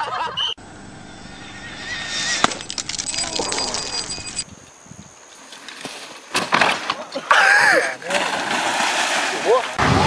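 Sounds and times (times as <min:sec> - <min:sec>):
motorcycle whine: 0:00.6 - 0:04.4
wind and road noise: 0:00.6 - 0:05.4.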